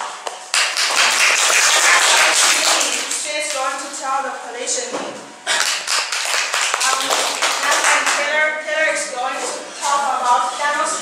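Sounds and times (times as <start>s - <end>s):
small audience clapping: 0.5s - 3.7s, 5.5s - 8.3s
woman speaking: 2.3s - 4.9s.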